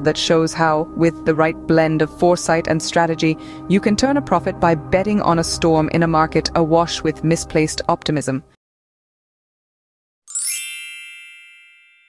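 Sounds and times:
high metallic chime: 0:10.3 - 0:12.0.

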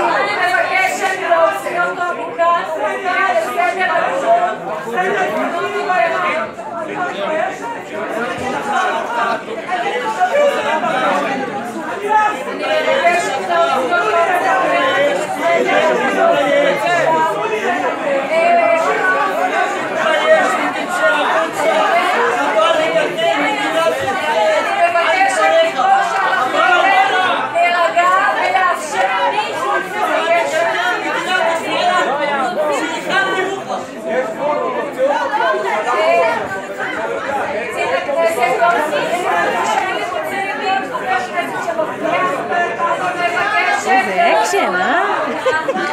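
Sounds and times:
crowd hubbub in a hall: 0:00.0 - 0:45.9
people chattering: 0:00.0 - 0:45.9.

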